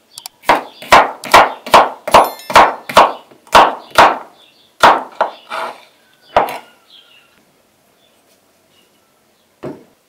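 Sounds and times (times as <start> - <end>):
knife chopping on wooden board: 0.4 - 5.7, 6.3 - 6.6.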